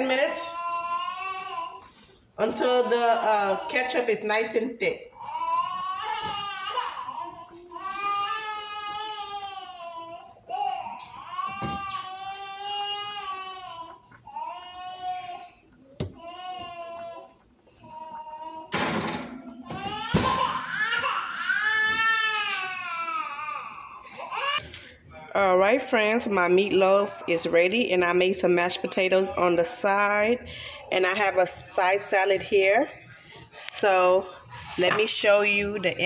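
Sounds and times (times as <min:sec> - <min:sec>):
baby crying: 0:19.6 - 0:24.6.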